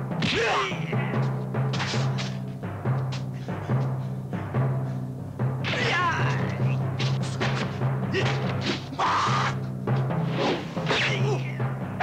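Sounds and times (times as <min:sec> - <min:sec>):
pounding timpani music: 0:00.0 - 0:12.0
fighters yelling and grunting: 0:00.2 - 0:01.2, 0:05.7 - 0:06.8, 0:08.1 - 0:09.6.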